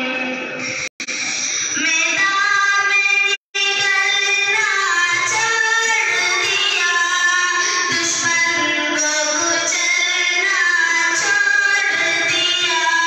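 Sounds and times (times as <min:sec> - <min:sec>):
high voice singing devotional song: 0:00.0 - 0:13.0.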